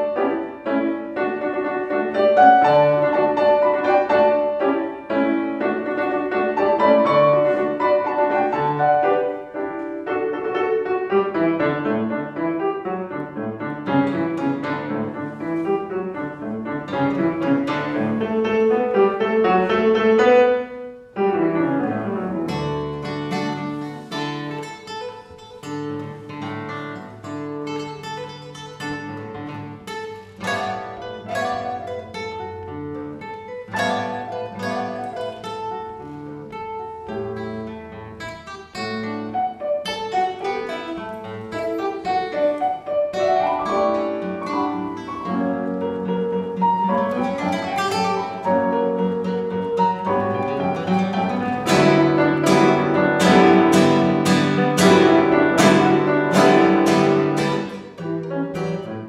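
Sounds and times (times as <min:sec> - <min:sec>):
piano accompaniment: 0:00.0 - 0:59.0
plucked classical guitar: 0:00.0 - 0:59.0.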